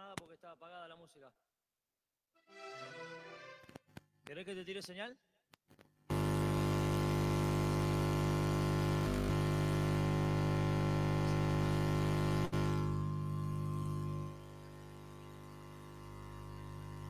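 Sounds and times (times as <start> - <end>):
loud electrical hum: 6.1 - 17.0.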